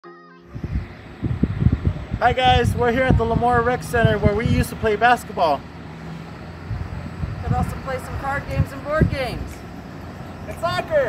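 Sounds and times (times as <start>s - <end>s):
steady pitched tone: 0.0s - 9.3s
wind buffeting microphone: 0.5s - 11.0s.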